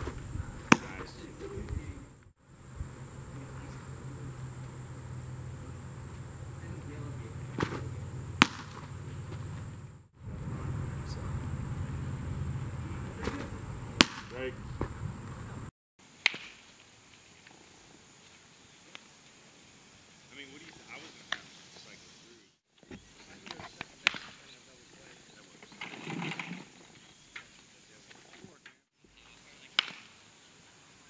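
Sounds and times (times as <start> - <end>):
baseball popping into catcher's mitt: 0.7 - 1.1, 7.6 - 8.9
high-pitched insect drone: 2.4 - 8.4, 9.0 - 15.3.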